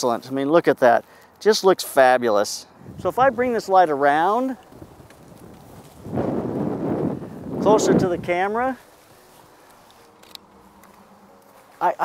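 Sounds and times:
rustling and rubbing: 3.1 - 12.0.

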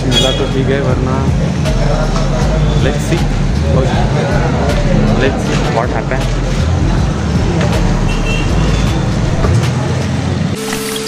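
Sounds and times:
roadside traffic rumble: 0.0 - 11.0.

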